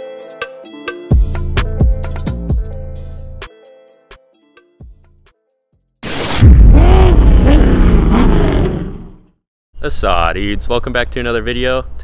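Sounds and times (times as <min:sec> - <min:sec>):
whoosh: 0:06.0 - 0:09.3.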